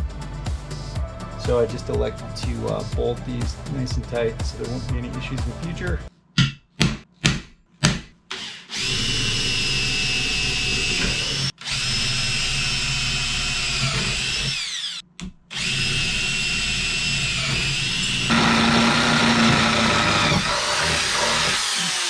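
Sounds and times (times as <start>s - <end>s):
drill boring into metal: 8.3s - 22.0s.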